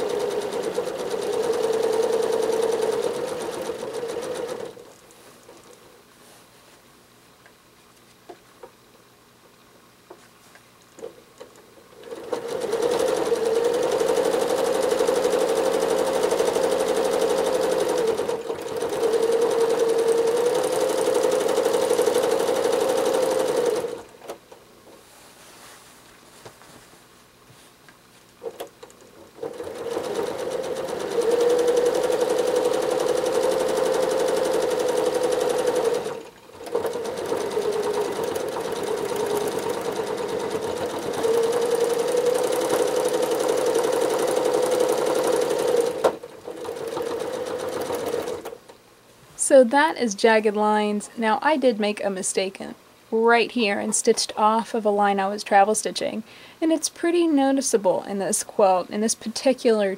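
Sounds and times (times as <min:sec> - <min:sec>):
sewing machine running: 0:00.0 - 0:04.9, 0:12.0 - 0:24.2, 0:29.4 - 0:48.6.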